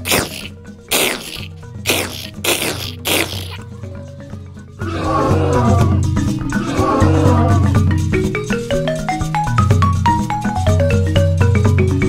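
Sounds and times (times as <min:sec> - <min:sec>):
short hissing strokes falling in pitch: 0:00.0 - 0:03.6.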